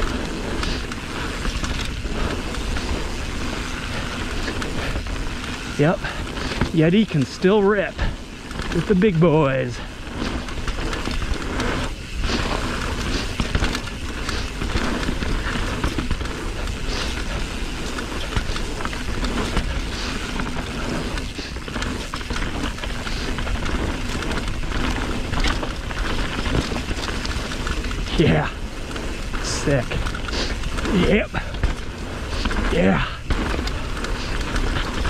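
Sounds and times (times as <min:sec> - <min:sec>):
bike tyres rolling over dirt: 0:00.0 - 0:35.0
bike knocking over bumps: 0:09.8 - 0:35.0.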